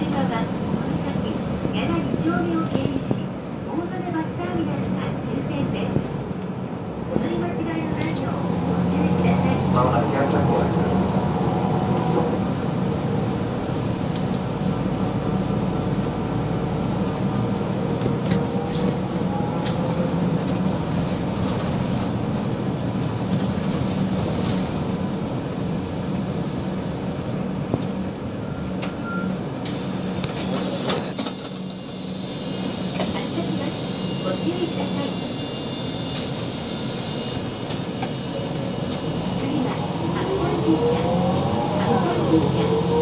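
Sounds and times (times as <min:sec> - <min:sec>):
bus engine hum: 0:00.0 - 0:43.0
road noise: 0:00.0 - 0:43.0
sharp air hiss: 0:29.6 - 0:31.0.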